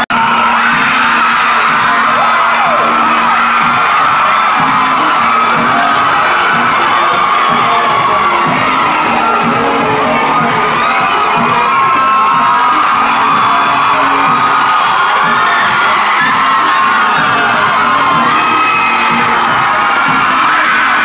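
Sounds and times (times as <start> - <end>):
crowd cheering and screaming: 0.0 - 21.0
music playing: 0.0 - 21.0.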